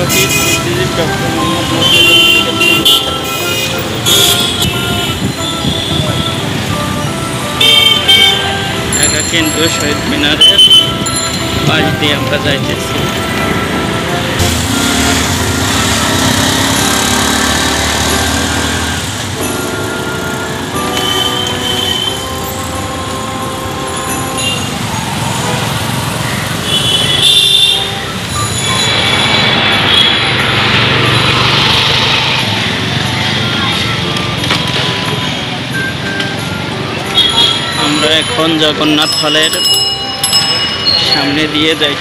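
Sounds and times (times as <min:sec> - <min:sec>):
music: 0:00.0 - 0:26.8, 0:27.7 - 0:42.0
street traffic noise: 0:00.0 - 0:42.0.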